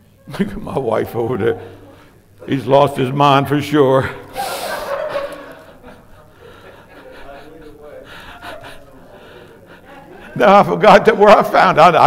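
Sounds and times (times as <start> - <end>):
breath: 4.4 - 5.0, 8.0 - 10.3
soft chuckling: 4.4 - 10.4
faint indistinct voices: 4.9 - 10.4.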